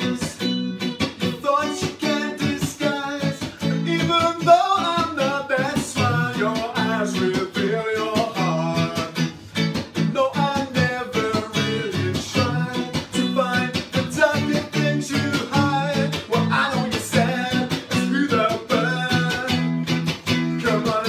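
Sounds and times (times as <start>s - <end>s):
electric guitar strumming: 0.0s - 21.0s
man singing: 0.0s - 21.0s.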